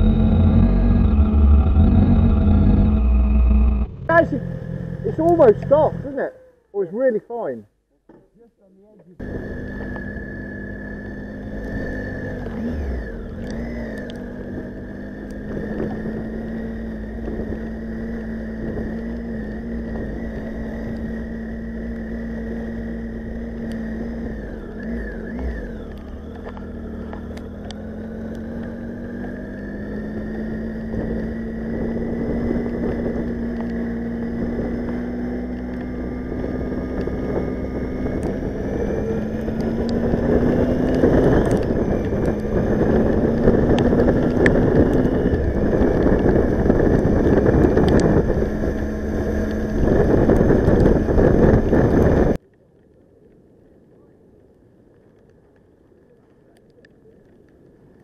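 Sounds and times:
motorcycle engine running: 0.0 - 6.4, 9.2 - 52.4
wind noise: 30.7 - 52.4.

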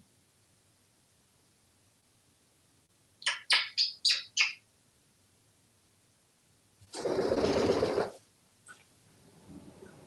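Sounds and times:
parrot chirping: 3.2 - 4.7
wing flapping: 6.9 - 8.2.

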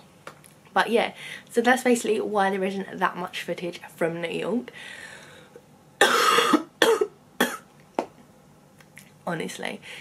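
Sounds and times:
woman coughing: 6.0 - 7.7.

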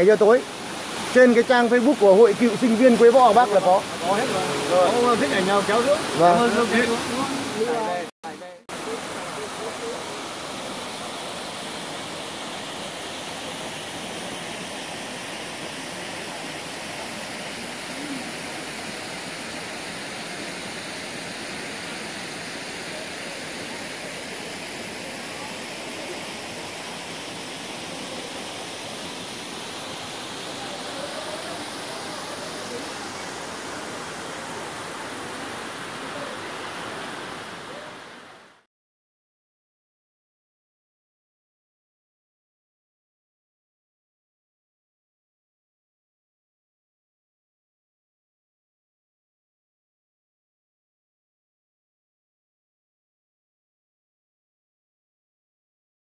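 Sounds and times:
waterfall rushing: 0.0 - 38.6.

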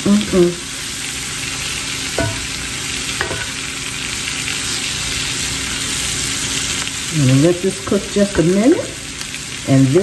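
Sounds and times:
food sizzling in a skillet: 0.0 - 10.0.

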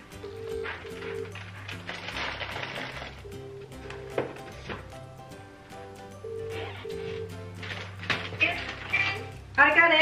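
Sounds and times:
background music: 0.0 - 10.0
telephone ringback tone: 0.1 - 1.6, 3.2 - 4.7, 6.0 - 7.6.

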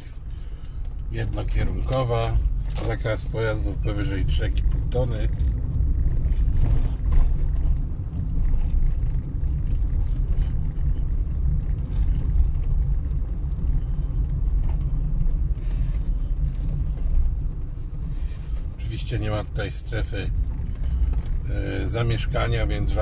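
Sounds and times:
car engine and tyres rumbling: 0.0 - 23.0.

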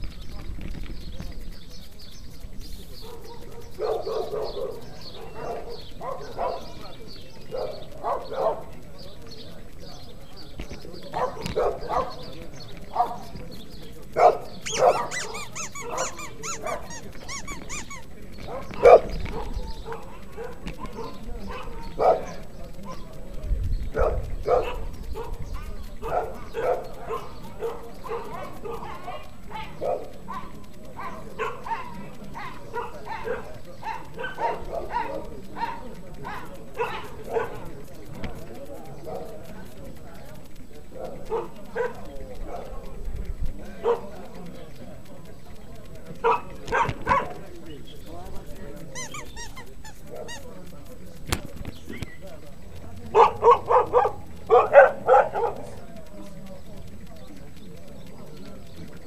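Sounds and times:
people talking in background: 0.0 - 59.0
dog barking: 3.0 - 6.8, 7.4 - 8.8, 11.2 - 12.3, 12.9 - 13.4, 14.2 - 23.1, 23.9 - 37.7, 41.0 - 42.9, 43.8 - 44.2, 46.2 - 47.5, 53.1 - 55.8.

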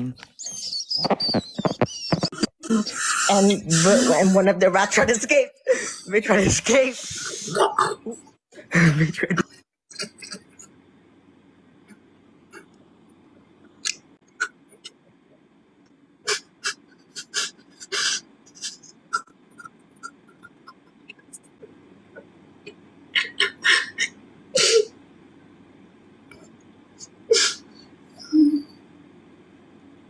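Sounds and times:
person sniffing: 7.0 - 7.6, 16.3 - 18.8.

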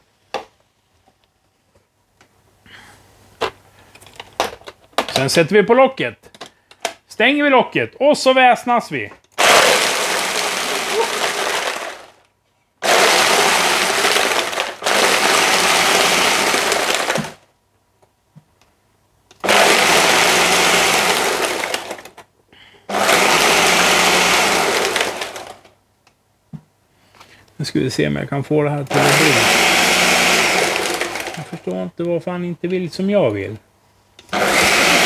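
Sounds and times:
blender crushing ice: 9.4 - 12.2, 12.8 - 17.5, 19.4 - 22.2, 22.9 - 25.7, 28.9 - 31.7, 34.2 - 35.0.

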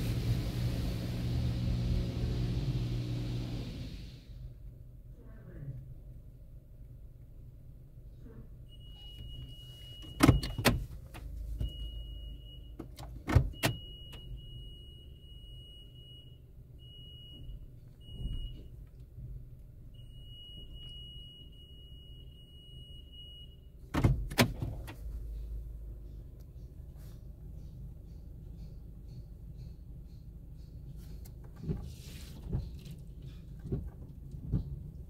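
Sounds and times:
car wash machinery hum: 0.0 - 5.1, 8.7 - 35.0.

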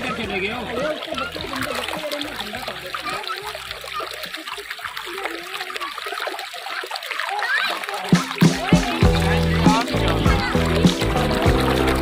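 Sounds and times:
children's voices: 0.0 - 12.0
stream running over stones: 0.0 - 12.0.

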